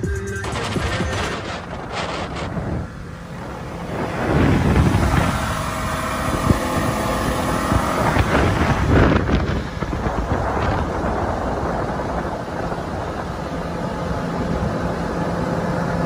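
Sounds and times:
motorboat engine drone: 0.0 - 16.0
wind buffeting microphone: 0.0 - 16.0.

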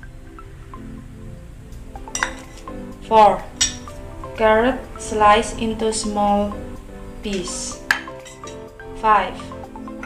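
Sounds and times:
background music: 0.0 - 10.0
steel bowls clinking: 2.0 - 6.4, 7.1 - 8.8.

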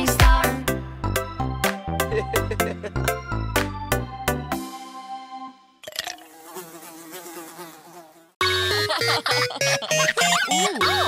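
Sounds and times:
bright children's music: 0.0 - 5.8, 8.4 - 11.0
cartoon flies buzzing: 6.2 - 11.0.

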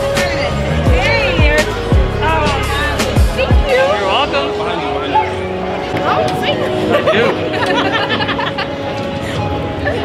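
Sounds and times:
background music: 0.0 - 10.0
people chattering: 0.0 - 10.0.

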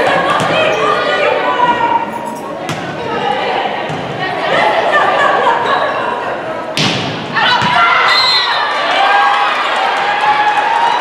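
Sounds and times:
people shouting and cheering: 2.9 - 11.0
volleyball being struck: 6.8 - 7.8.

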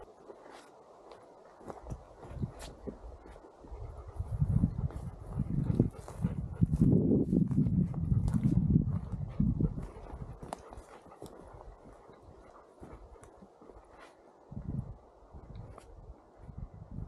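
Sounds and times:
wind buffeting microphone: 1.7 - 13.2, 14.5 - 17.0.

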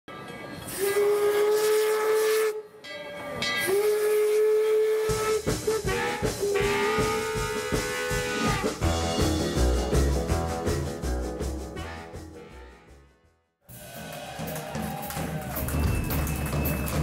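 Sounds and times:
steam locomotive whistle: 0.7 - 2.8, 3.5 - 9.1
rhythmic low thumps: 5.2 - 13.1.

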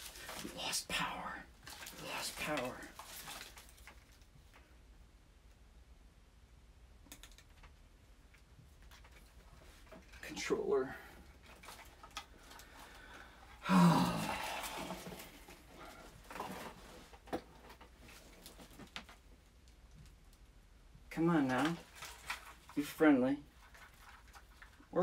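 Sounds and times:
man's loud breathy vocal sound: 13.1 - 15.2
man muttering: 13.6 - 15.0.

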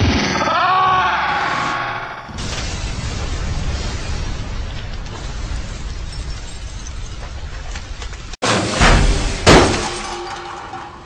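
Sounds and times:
explosion: 1.6 - 10.3
sharp crash: 2.3 - 7.4, 8.4 - 11.0
debris noise: 2.3 - 11.0
glass breaking and shattering: 4.9 - 11.0.

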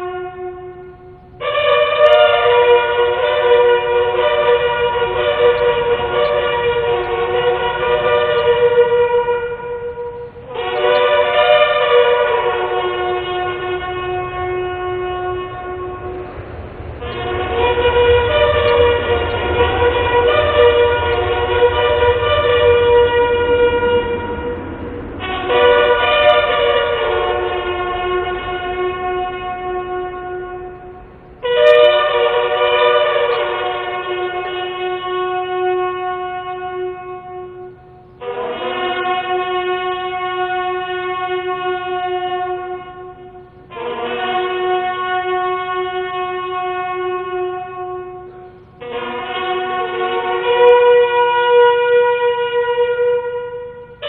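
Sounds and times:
bugles playing slow call: 0.0 - 54.0.

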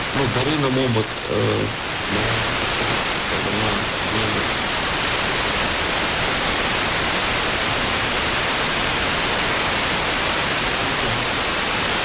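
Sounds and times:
radio receiver hiss: 0.0 - 4.8
weak voice on radio: 3.3 - 4.5.

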